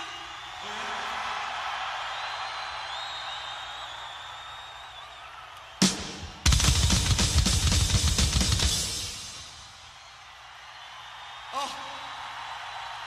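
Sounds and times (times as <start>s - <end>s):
crowd cheering: 0.0s - 13.0s
drum and cymbal fill: 5.8s - 9.7s.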